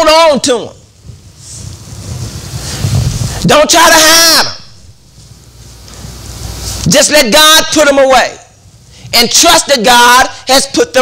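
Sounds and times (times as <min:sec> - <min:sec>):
rustling on microphone: 0:01.0 - 0:03.4, 0:05.0 - 0:06.9.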